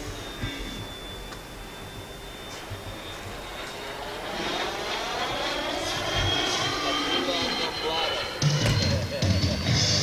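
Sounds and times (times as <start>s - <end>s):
model jet fan whining: 0.0s - 10.0s.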